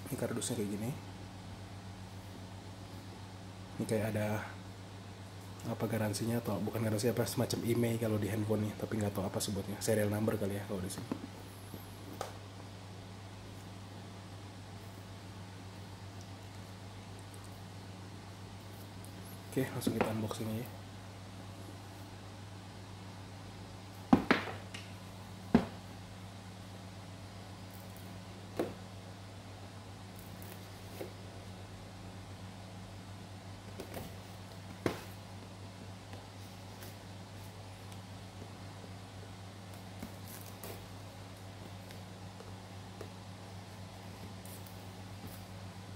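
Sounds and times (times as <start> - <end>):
low steady hum: 0.0 - 45.9.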